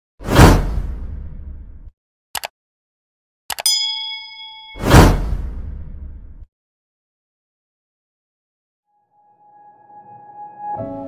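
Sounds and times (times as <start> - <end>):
whoosh sound effect: 4.7 - 5.7.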